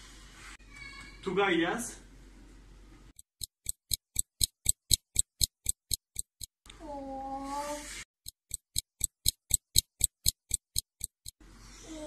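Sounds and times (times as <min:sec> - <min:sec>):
clock ticking: 0:03.2 - 0:06.6, 0:08.2 - 0:11.4.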